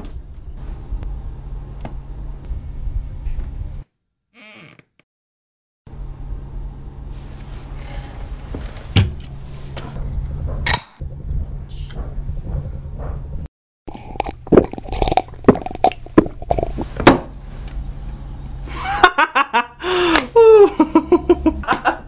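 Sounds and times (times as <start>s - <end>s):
gulping and swallowing: 13.9s - 17.0s
laughter: 18.7s - 22.0s.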